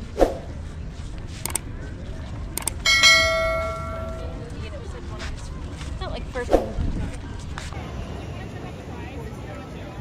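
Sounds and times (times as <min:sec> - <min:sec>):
mouse clicks: 0:01.4 - 0:01.6, 0:02.6 - 0:02.8
bright bell chime: 0:02.9 - 0:04.4.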